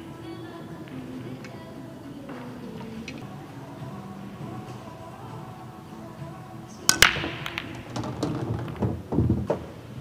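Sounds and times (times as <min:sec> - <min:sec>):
pool balls clicking: 0:00.0 - 0:10.0
cue striking cue ball: 0:06.8 - 0:10.0
pool balls breaking crack: 0:06.9 - 0:09.9.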